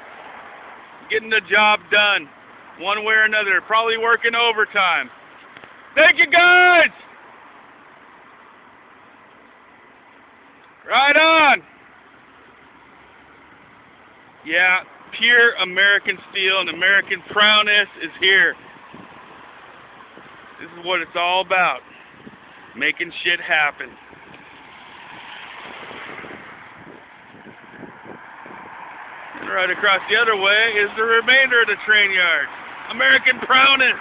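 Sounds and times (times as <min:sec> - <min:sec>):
distant engines rumbling: 0:00.0 - 0:34.0
road traffic passing: 0:00.0 - 0:34.0.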